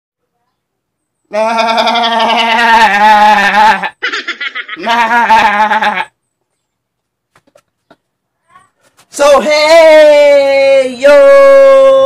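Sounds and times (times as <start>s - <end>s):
man laughing: 1.9s - 6.1s.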